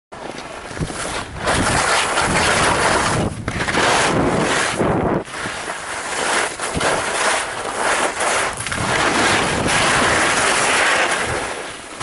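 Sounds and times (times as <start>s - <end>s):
skis sliding over snow: 0.2s - 12.0s
wind on microphone: 0.6s - 12.0s.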